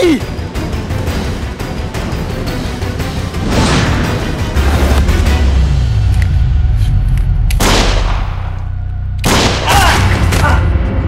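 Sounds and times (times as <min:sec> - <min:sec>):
handgun shot: 0:07.5 - 0:08.6, 0:09.2 - 0:10.6.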